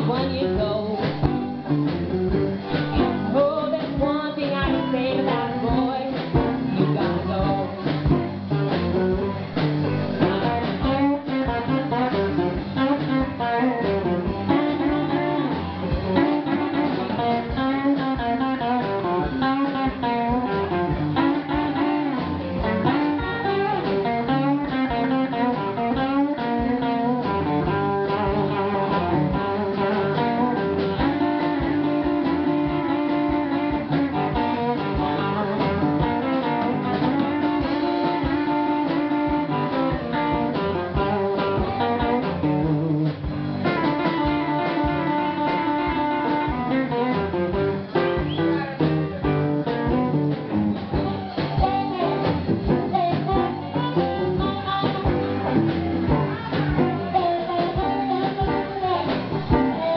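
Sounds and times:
blues band playing: 0.0 - 59.9
electric guitar melody: 0.0 - 59.9.

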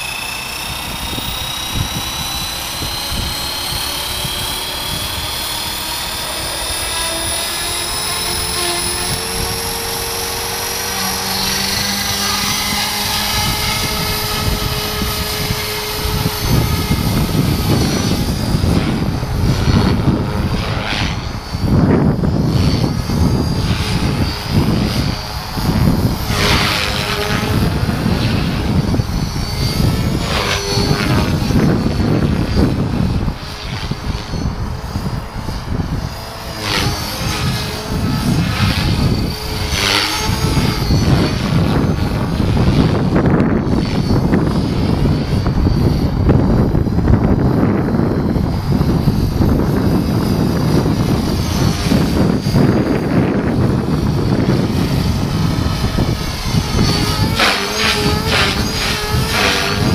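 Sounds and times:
rc helicopter rotor whine: 0.0 - 59.9.

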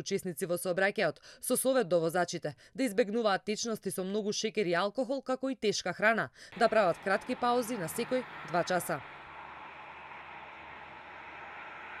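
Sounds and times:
motorway traffic hiss: 6.5 - 12.0.

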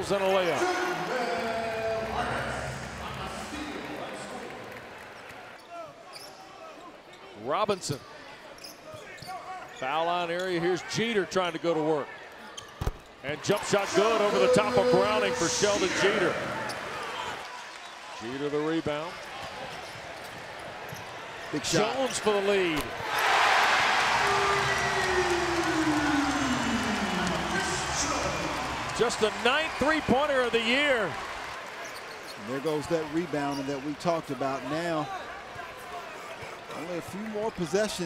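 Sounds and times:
crowd noise: 0.0 - 6.1, 12.4 - 18.4, 19.0 - 38.0.

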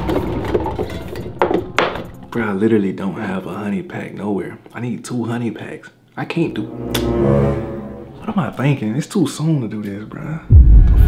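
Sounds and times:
plastic bottles clattering: 0.0 - 2.2.

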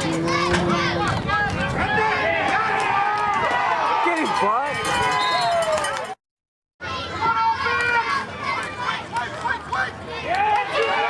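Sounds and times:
crowd shouting: 0.2 - 6.1, 6.8 - 11.0.

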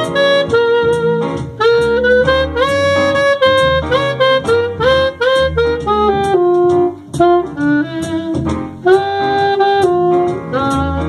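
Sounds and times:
alto saxophone playing slow jazz: 0.0 - 11.0.

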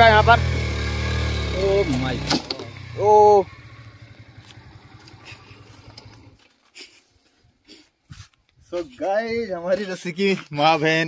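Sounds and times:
motorcycle engine idling: 0.0 - 6.8.

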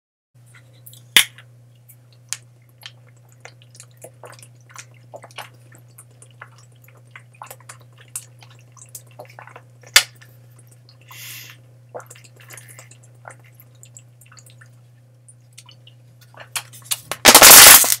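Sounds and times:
steady low hum: 0.4 - 18.0
person swallowing: 11.9 - 13.6
bottle cap cracking open: 17.2 - 18.0.

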